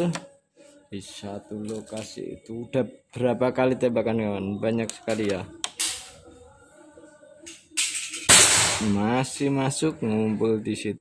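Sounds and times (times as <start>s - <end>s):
air rifle shot: 8.3s - 8.9s.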